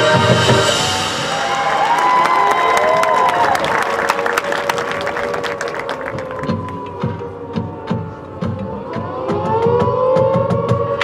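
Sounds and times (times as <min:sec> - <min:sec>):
siren-like wail: 0:00.7 - 0:11.0.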